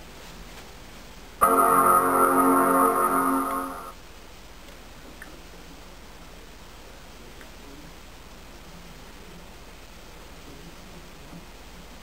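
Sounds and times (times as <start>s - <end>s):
faint room hiss: 0.0s - 12.0s
computer startup chime: 1.4s - 4.0s.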